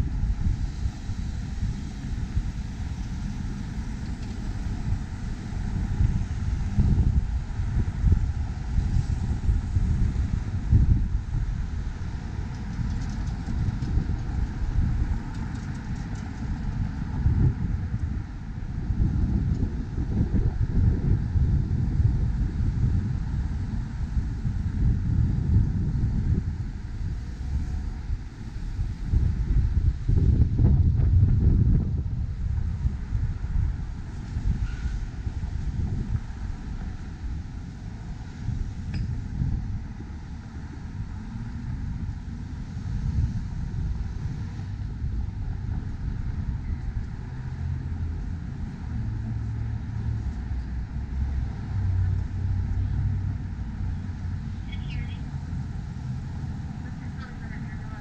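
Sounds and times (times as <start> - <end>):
street traffic passing: 0.0 - 58.0
wind buffeting microphone: 0.0 - 58.0.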